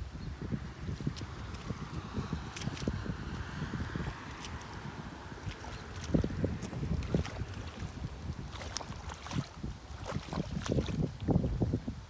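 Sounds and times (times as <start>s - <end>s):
wet slaps and squelches: 1.0s - 11.1s
hoe scraping through wet mud: 1.0s - 11.2s.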